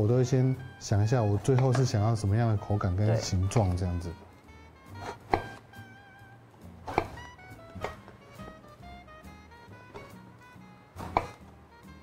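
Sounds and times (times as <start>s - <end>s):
light jazzy background music: 0.0s - 12.0s
knife chopping on wooden board: 4.9s - 5.6s, 6.8s - 8.2s, 9.9s - 10.2s, 11.0s - 11.5s.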